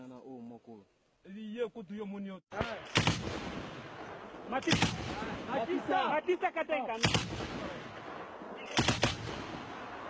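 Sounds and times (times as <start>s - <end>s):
gunshot: 2.5s - 5.8s, 6.9s - 10.0s.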